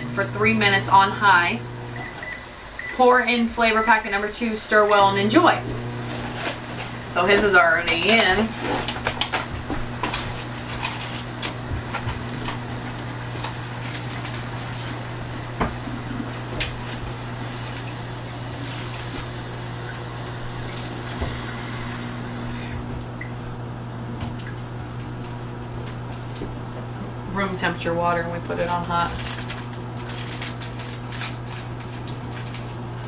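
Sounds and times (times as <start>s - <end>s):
steady low hum: 0.0s - 33.0s
clicks and rustles of packaging: 6.1s - 15.0s, 28.5s - 33.0s.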